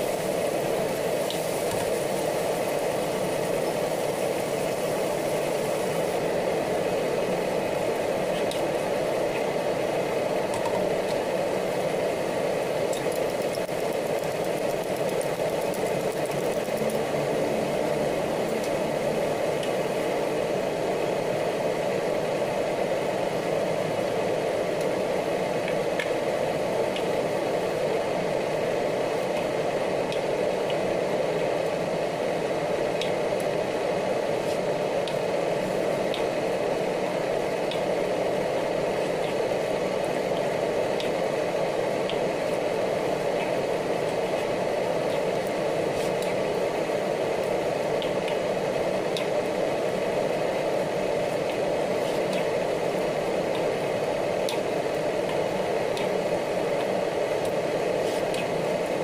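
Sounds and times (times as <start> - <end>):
sauce sizzling in a wok: 0.0 - 7.2
whirring drone: 0.0 - 59.0.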